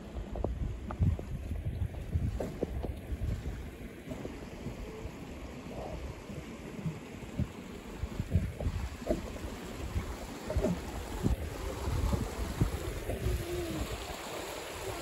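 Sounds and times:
wind buffeting microphone: 0:00.0 - 0:05.1, 0:07.2 - 0:15.0.

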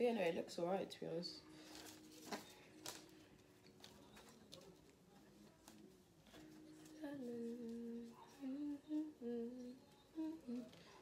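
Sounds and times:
woman humming: 0:07.0 - 0:10.8.

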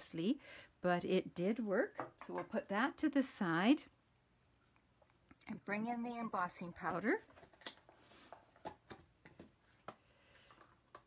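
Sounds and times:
soft plastic rustles: 0:06.6 - 0:11.0.

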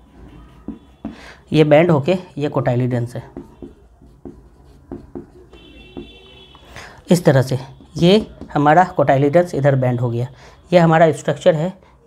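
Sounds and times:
pen tapping and drawing: 0:00.2 - 0:01.2, 0:03.0 - 0:09.0.

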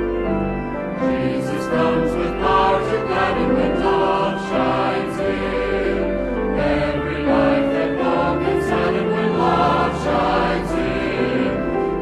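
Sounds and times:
keyboard chords: 0:00.0 - 0:12.0
choir singing a hymn: 0:01.0 - 0:12.0.

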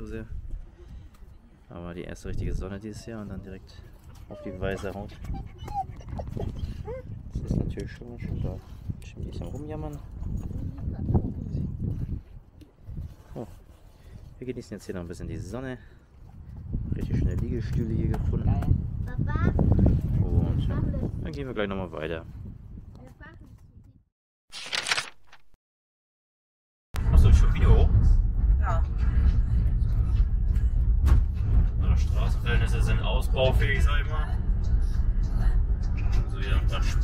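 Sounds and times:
wind rumbling on microphone: 0:00.0 - 0:24.0, 0:27.0 - 0:37.0
faint outdoor background: 0:00.0 - 0:25.6
dog whimpering: 0:04.2 - 0:07.2.

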